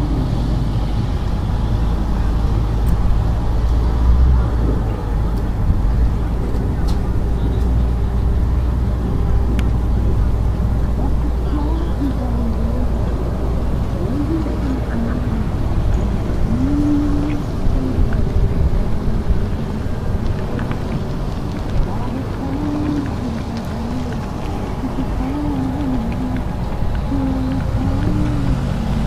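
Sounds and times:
faint distant voices: 0.0 - 29.0
low outdoor rumble: 0.0 - 29.0.

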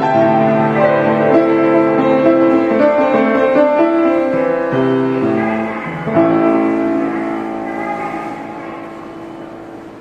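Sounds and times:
piano chord ringing: 0.0 - 10.0.

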